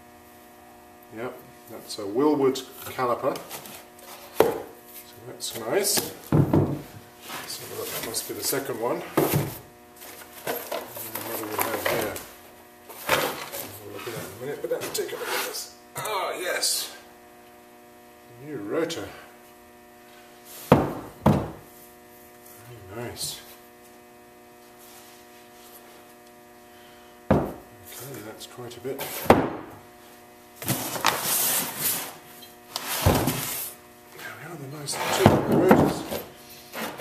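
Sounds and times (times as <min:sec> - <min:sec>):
electrical hum: 0:00.0 - 0:37.0.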